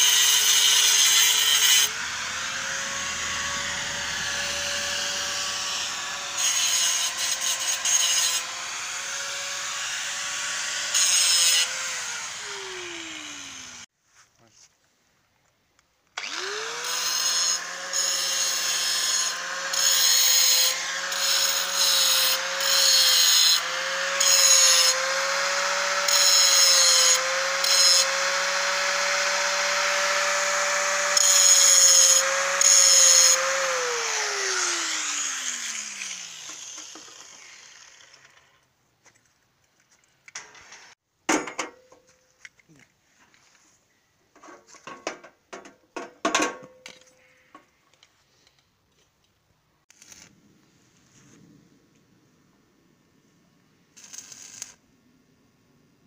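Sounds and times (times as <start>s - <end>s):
angle grinder grinding metal: 0.0s - 13.9s, 16.2s - 38.7s.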